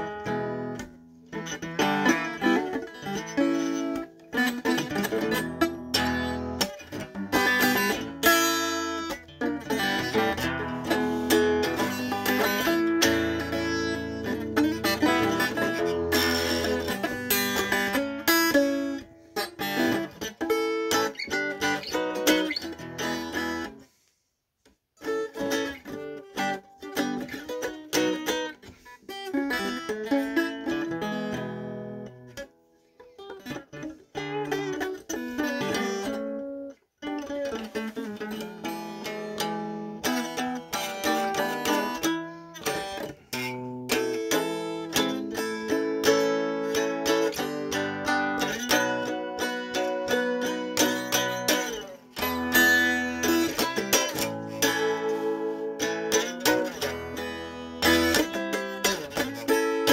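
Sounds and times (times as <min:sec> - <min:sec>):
electric guitar playing: 0:00.0 - 0:23.8, 0:25.0 - 0:59.9.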